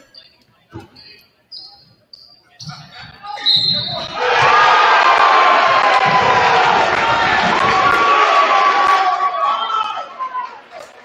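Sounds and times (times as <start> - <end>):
sneakers squeaking: 0.0 - 4.6
referee's whistle: 1.0 - 4.2, 9.2 - 10.1
crowd cheering and shouting: 4.0 - 11.0.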